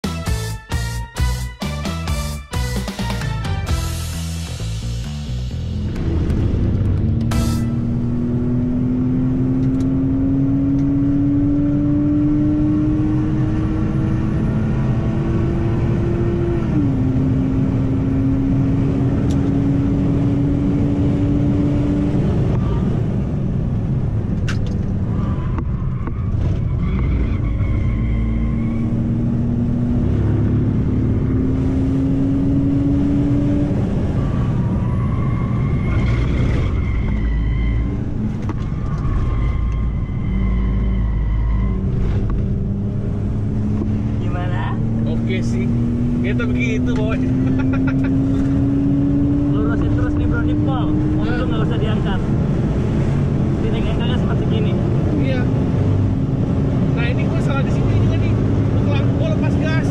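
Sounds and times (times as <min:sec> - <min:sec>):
road and tyre rumble: 0:03.2 - 0:59.9
car engine accelerating: 0:03.7 - 0:59.9.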